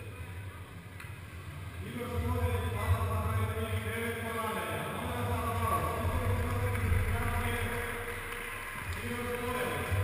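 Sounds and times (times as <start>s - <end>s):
low hum of sports hall: 0.0s - 10.0s.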